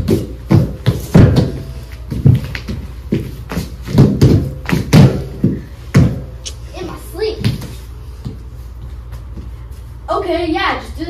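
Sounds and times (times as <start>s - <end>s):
hands and feet thumping on floor: 0.0s - 6.5s.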